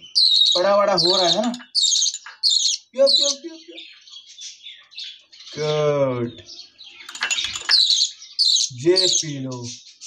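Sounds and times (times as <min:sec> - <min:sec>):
budgerigar begging calls: 0:00.0 - 0:04.0, 0:07.7 - 0:09.3.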